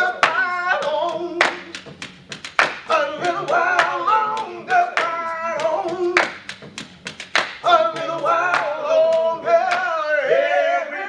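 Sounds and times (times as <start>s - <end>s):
men singing a cappella: 0.0s - 6.8s, 7.5s - 11.0s
hand claps: 0.0s - 9.9s.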